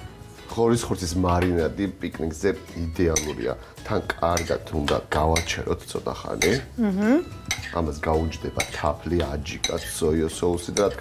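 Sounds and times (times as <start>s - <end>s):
fork clinking against glass bowl: 3.2s - 3.4s, 4.3s - 4.6s, 5.3s - 5.6s, 6.4s - 6.7s, 7.4s - 7.8s, 8.5s - 8.9s, 9.5s - 10.0s, 10.7s - 11.0s.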